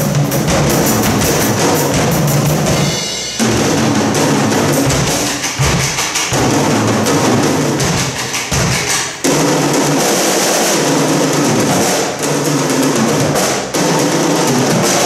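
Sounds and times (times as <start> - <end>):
drum kits playing together: 0.0 - 15.0.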